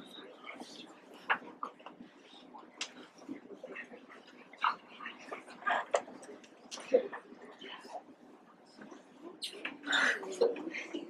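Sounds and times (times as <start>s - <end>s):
children whispering: 0.0s - 8.2s, 8.8s - 11.0s.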